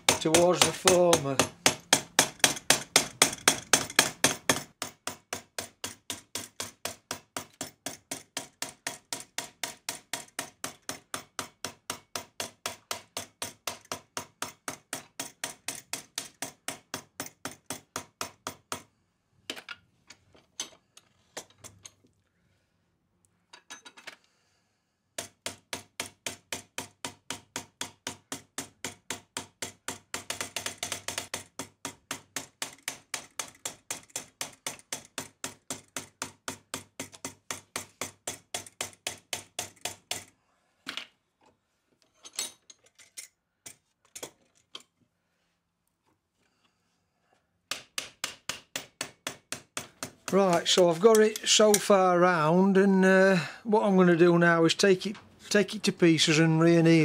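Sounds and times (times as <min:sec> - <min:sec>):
hammer striking copper plate: 0:00.0 - 0:18.6.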